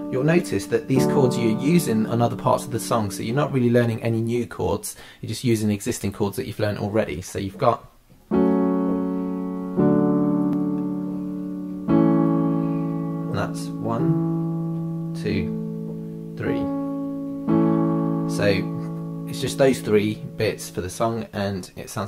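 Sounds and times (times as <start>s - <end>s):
piano chords: 0.0s - 4.3s, 8.3s - 21.3s.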